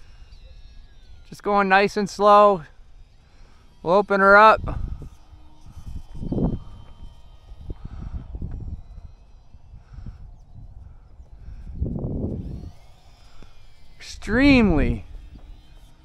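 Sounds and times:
high whine of model plane motors: 0.0s - 16.0s
wind buffeting microphone: 4.4s - 16.0s.

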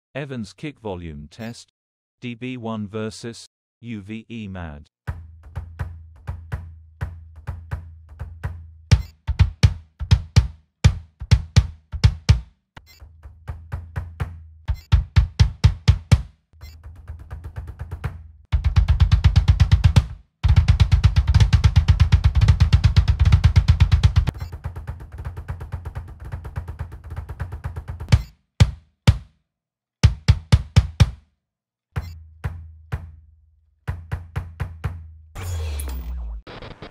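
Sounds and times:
kick drum double pedal strokes: 5.1s - 12.5s, 13.2s - 29.3s, 30.0s - 31.2s.

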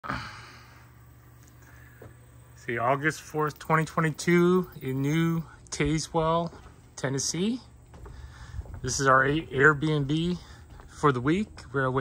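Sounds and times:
person exhaling breathily: 0.0s - 1.0s
steady low hum: 0.0s - 12.0s.

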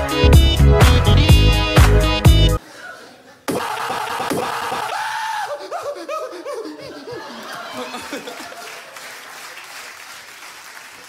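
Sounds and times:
man shouting into microphone: 3.5s - 5.7s.

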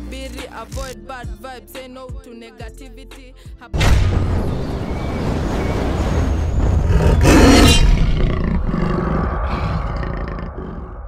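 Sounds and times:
low rumble: 3.8s - 11.0s
big cat roaring: 6.8s - 11.0s.

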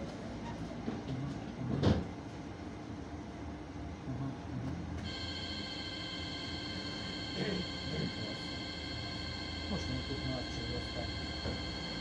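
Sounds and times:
tram rumbling on track: 3.9s - 12.0s
high-pitched multi-tone whine: 5.0s - 12.0s.

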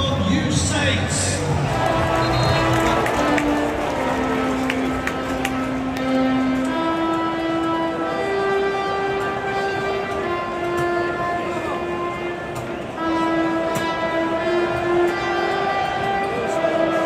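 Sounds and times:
large crowd noise: 0.0s - 17.0s
stadium music with long notes: 0.0s - 17.0s.

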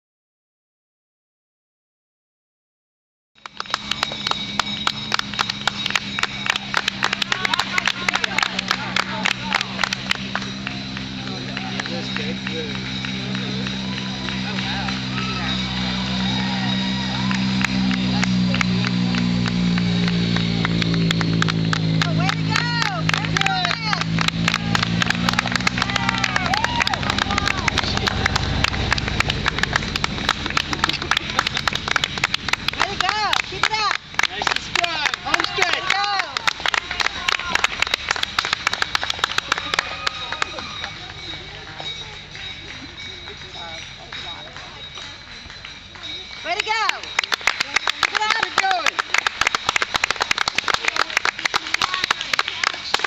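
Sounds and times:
hand clapping: 3.4s - 53.0s
low rumble: 3.4s - 53.0s
sharp rhythmic slaps: 3.4s - 53.0s.

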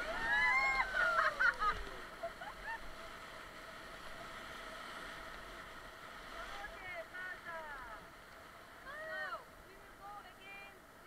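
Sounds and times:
whitewater rapids rushing: 0.0s - 5.5s.

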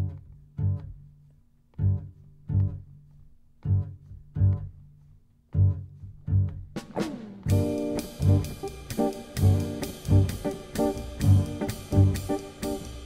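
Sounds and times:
plucked double bass: 0.0s - 13.0s.

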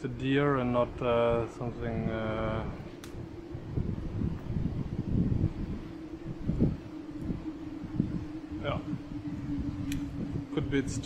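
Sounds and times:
steady low hum: 0.0s - 11.0s
wind buffeting microphone: 0.0s - 11.0s.

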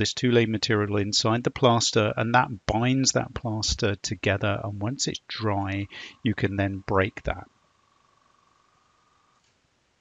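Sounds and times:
faint steady high tone: 0.0s - 9.4s.

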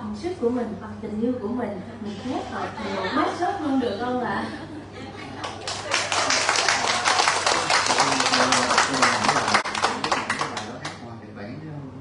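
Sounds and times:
audience applauding: 5.4s - 11.0s.

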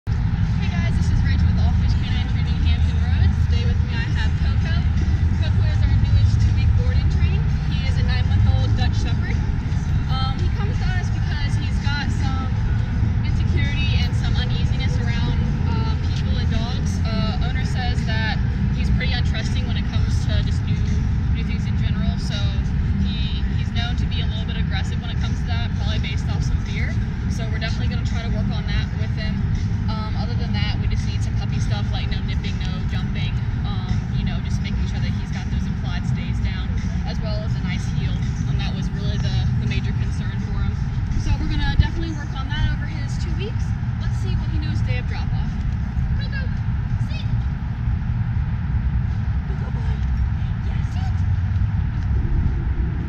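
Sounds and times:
steady low rumble: 0.0s - 53.0s.

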